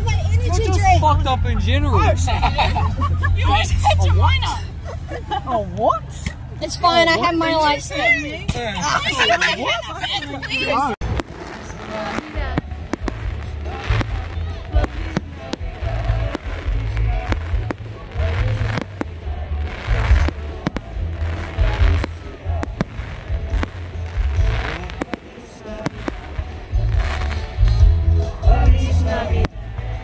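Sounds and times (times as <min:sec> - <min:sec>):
fireworks bangs and crackles: 0:11.0 - 0:30.0
low fireworks booms: 0:11.0 - 0:30.0
music: 0:12.4 - 0:30.0.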